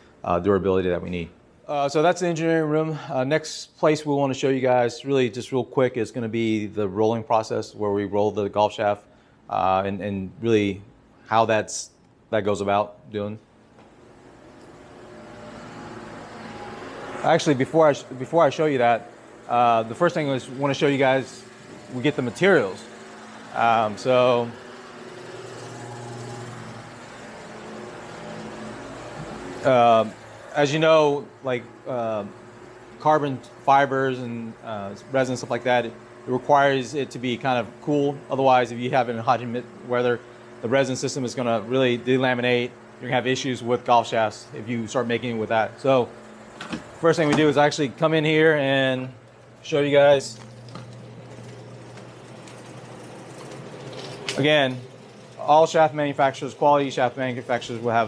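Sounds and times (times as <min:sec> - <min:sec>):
machinery humming: 0:12.4 - 0:58.0.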